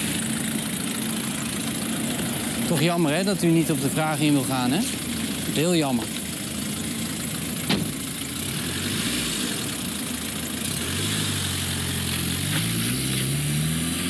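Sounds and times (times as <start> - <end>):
car engine idling: 0.0 - 14.0
car engine revving pulling away: 7.6 - 14.0
sharp knock: 7.7 - 8.0.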